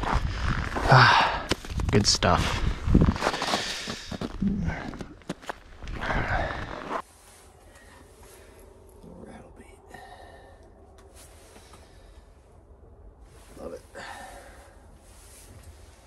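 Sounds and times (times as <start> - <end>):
snow crunching under hands and boots: 0.0 - 8.6, 13.2 - 16.0.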